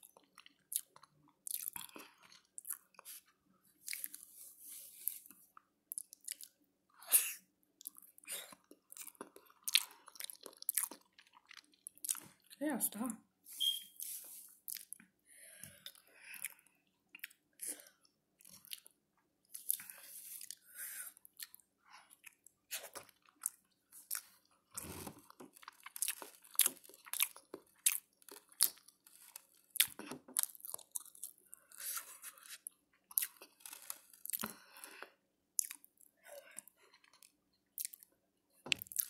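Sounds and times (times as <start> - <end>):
chewing and wet mouth sounds: 0.0 - 12.6, 14.0 - 39.0.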